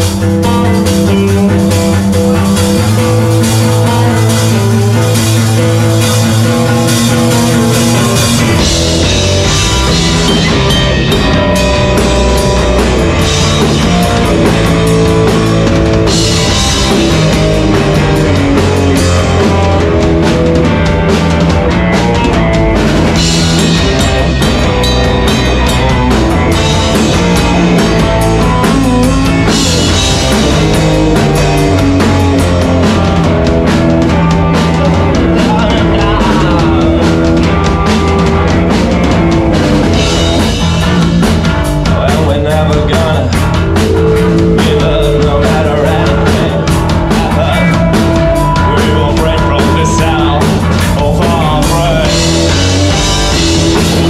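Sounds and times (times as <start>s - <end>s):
rock band playing: 0.0s - 54.0s
steady drum beat: 0.0s - 54.0s.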